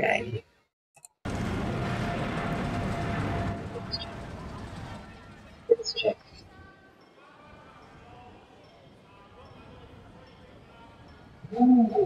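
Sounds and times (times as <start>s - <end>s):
faint crowd chatter: 3.5s - 12.0s.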